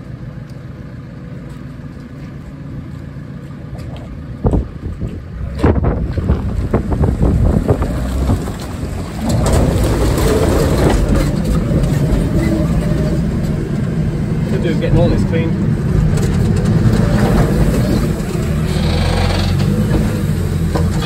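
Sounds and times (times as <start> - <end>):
diesel engine idling: 0.0 - 21.0
wind on microphone: 4.4 - 12.3
clunks: 15.9 - 21.0.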